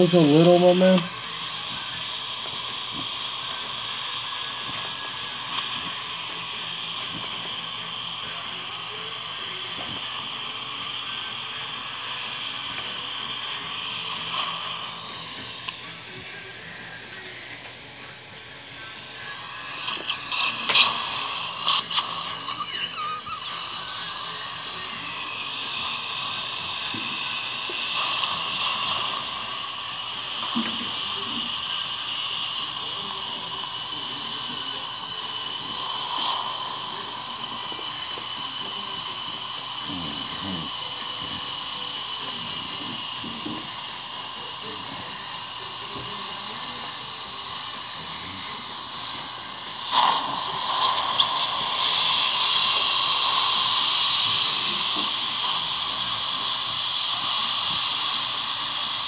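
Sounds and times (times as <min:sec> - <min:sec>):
dental suction hissing and whistling: 0:00.0 - 0:59.0.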